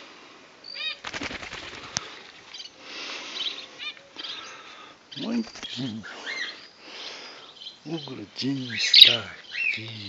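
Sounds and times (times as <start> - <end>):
rapid wing flapping: 0.9 - 2.6, 5.2 - 6.1
bird chirps: 1.8 - 10.0.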